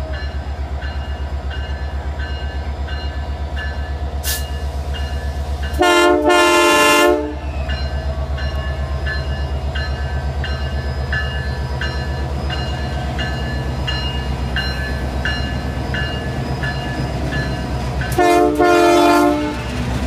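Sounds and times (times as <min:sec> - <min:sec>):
locomotive bell ringing: 0:00.0 - 0:06.8, 0:07.4 - 0:19.2
diesel locomotive engine throbbing: 0:00.0 - 0:20.0
locomotive air horn blasts: 0:05.7 - 0:07.5, 0:18.1 - 0:19.8.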